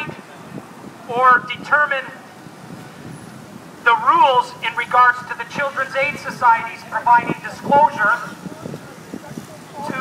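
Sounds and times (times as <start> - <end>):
man speaking through megaphone: 0.0 - 0.3, 1.1 - 2.2, 3.8 - 10.0
city street traffic hum: 0.0 - 10.0.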